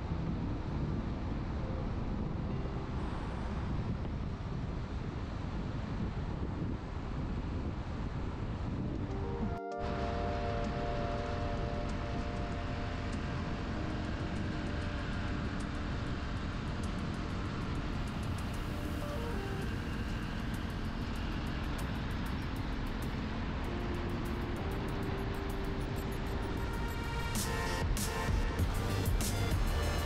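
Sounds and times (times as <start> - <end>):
car road and engine rumble: 0.0 - 30.0
soft background music: 0.0 - 30.0.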